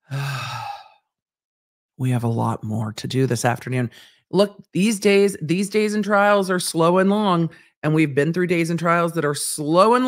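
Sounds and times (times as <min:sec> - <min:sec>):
woman sighing: 0:00.0 - 0:01.0.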